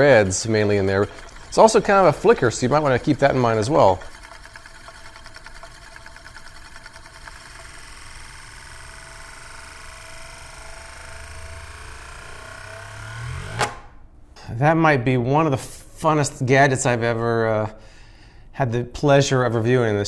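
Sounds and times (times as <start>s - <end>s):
spinning metal disk whirring: 0.0s - 13.8s.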